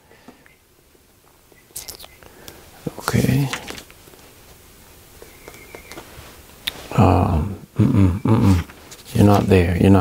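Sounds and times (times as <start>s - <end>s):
mouth click: 1.7s - 2.6s
man whispering faintly: 2.8s - 3.8s.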